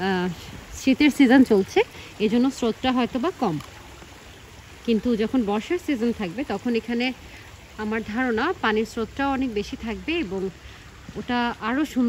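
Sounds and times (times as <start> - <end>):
stream running over stones: 0.0 - 12.0.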